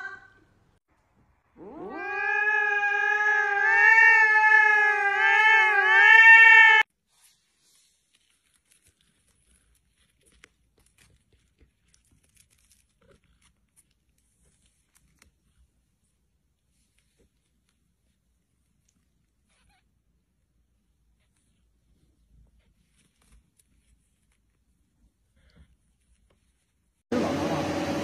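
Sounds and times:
cat yowling: 1.6s - 6.9s.

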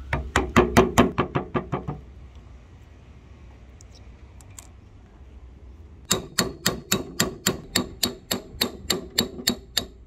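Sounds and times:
hammer striking steel punch: 6.1s - 10.0s.

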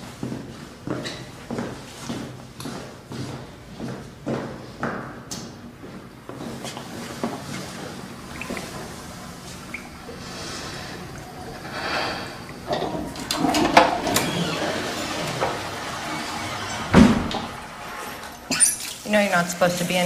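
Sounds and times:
tap water splashing in basin: 8.3s - 9.0s
heavy thump: 16.9s - 17.5s.

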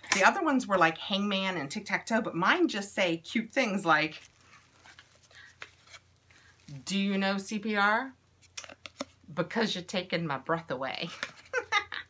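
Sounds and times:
woman speaking: 0.0s - 4.2s, 6.7s - 8.2s, 9.3s - 11.2s
cardboard coasters rustling: 4.0s - 6.8s.

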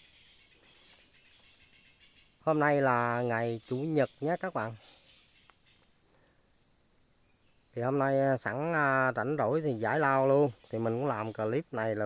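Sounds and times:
high insect hum: 0.0s - 12.0s.

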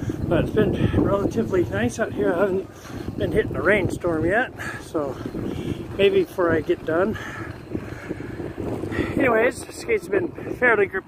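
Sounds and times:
wind on microphone: 0.0s - 11.0s
skate wheels rolling on wet concrete: 1.0s - 11.0s.

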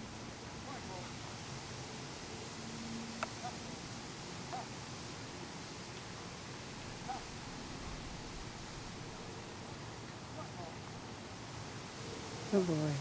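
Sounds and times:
outdoor background hiss: 0.0s - 13.0s.

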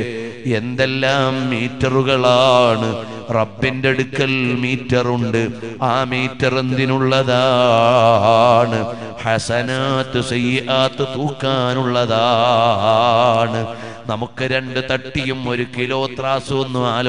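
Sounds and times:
man chanting: 0.0s - 17.0s.

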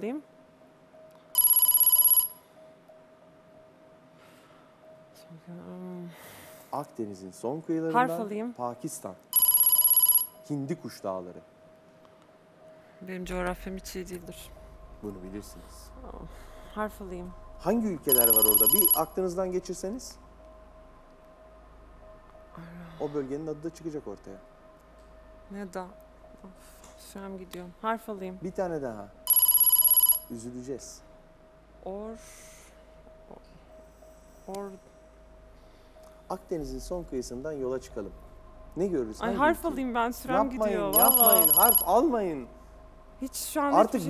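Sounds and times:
faint background music tone: 0.0s - 44.0s
low hum: 0.0s - 44.0s
man's voice: 7.6s - 8.3s, 40.3s - 42.5s, 43.8s - 44.0s
bell-like electronic trill: 16.8s - 20.2s, 39.2s - 42.5s.

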